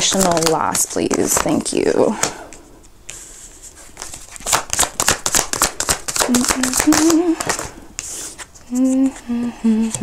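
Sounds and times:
cards being shuffled: 0.0 - 10.0
person humming: 6.2 - 7.7, 8.6 - 10.0.

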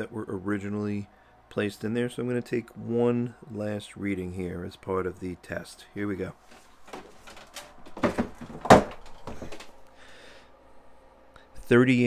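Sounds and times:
plastic cooler lid knocks and clunks: 7.9 - 9.6.

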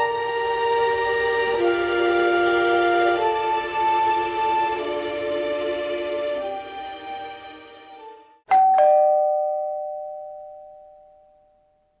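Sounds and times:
background music: 0.0 - 8.5
two-note ding-dong chime: 8.5 - 11.8.

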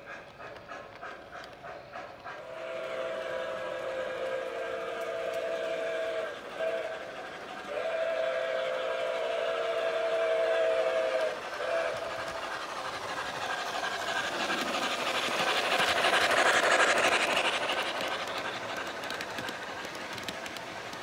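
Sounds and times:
steam hiss: 0.0 - 21.0
steam locomotive chuffing: 0.0 - 21.0
steam whistle blasts: 2.4 - 7.1, 7.7 - 12.2.

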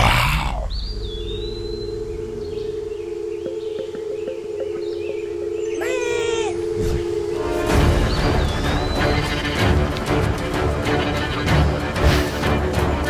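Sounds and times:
low two-tone drone: 0.0 - 13.0.

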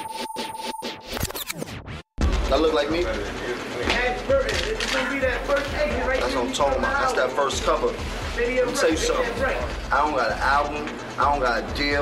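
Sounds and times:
turntable scratching: 0.0 - 2.0.

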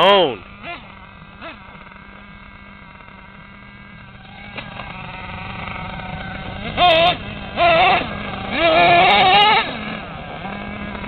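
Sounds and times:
model truck engine idling: 0.0 - 11.0.

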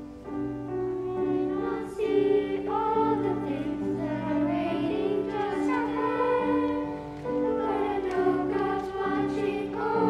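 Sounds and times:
children's choir singing: 0.6 - 10.0.

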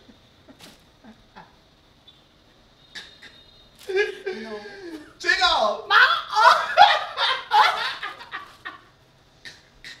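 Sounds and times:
woman laughing: 6.0 - 8.9.

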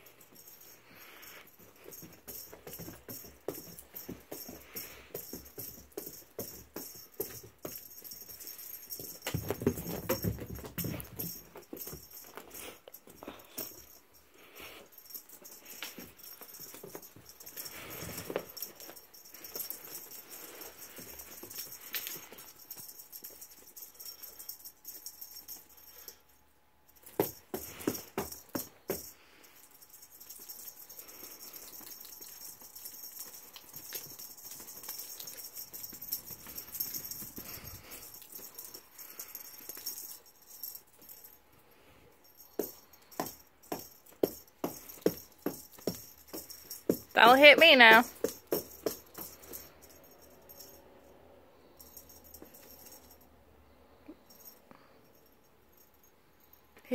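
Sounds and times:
cat toy rattling: 0.0 - 26.2, 26.9 - 41.4, 42.2 - 50.8.

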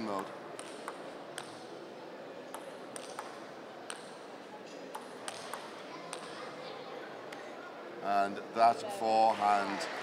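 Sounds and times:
steady background noise: 0.0 - 10.0
table tennis ball clicking: 0.6 - 1.6, 2.5 - 4.2, 4.9 - 6.3.

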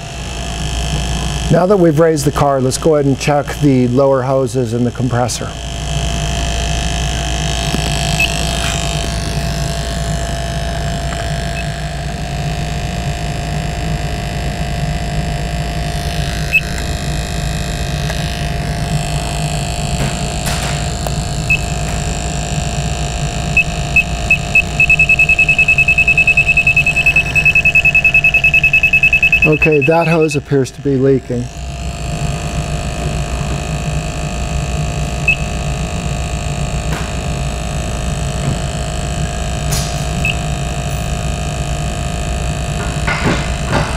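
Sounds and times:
steady low hum: 0.0 - 43.8
leak detector beeping: 7.1 - 12.1, 15.8 - 19.6, 21.0 - 30.5, 35.2 - 35.8, 40.2 - 41.0.

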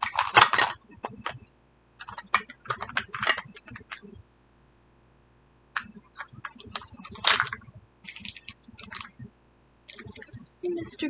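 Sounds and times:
plastic packaging crinkling: 0.0 - 1.4, 2.0 - 4.0, 5.8 - 9.2, 9.9 - 10.4.

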